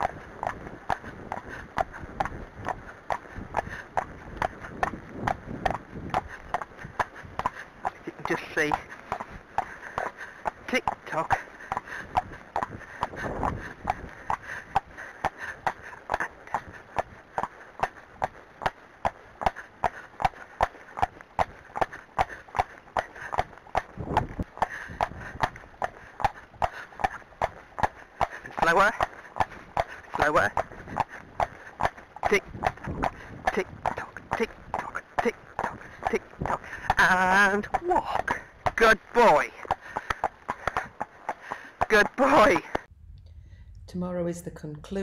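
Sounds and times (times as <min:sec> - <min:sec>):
horse hooves trotting on tarmac: 0:00.0 - 0:42.9.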